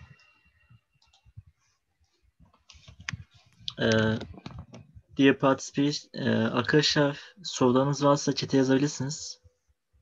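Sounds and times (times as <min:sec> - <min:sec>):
faint clicks: 0:01.0 - 0:04.9.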